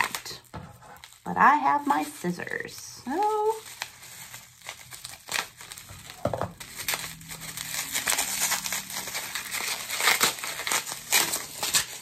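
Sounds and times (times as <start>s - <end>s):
bubble wrap crinkling: 0.0s - 12.0s.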